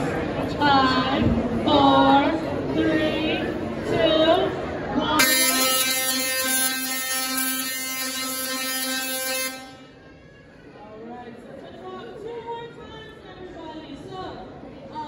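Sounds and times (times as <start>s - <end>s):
tesla coil spark buzz: 5.2s - 9.9s.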